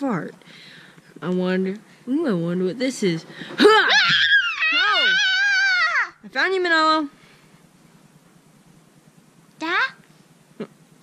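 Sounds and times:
high-pitched wordless vocal cry: 0:03.6 - 0:06.2.

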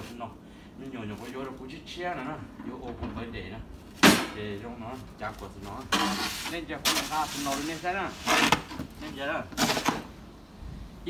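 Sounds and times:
man talking: 0:04.3 - 0:08.2.

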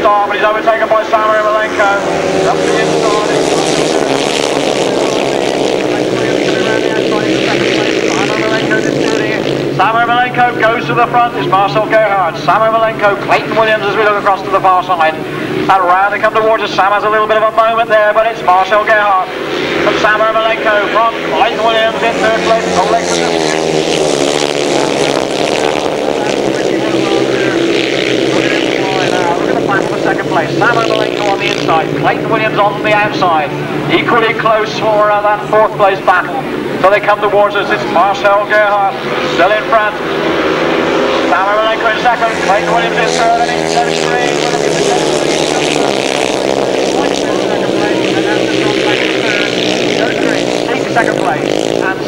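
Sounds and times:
racing motorcycle engines at full throttle: 0:00.0 - 0:52.0.

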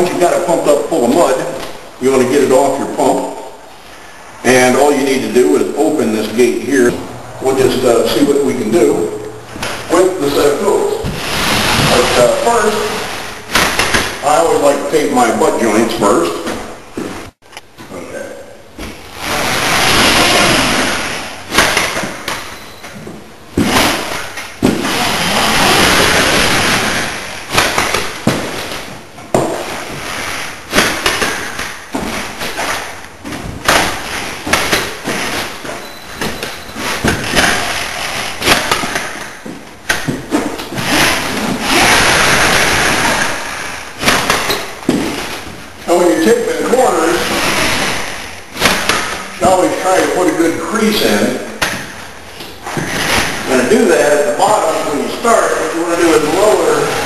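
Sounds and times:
tape scraping and rustling: 0:08.2 - 0:15.0, 0:18.8 - 0:57.0.

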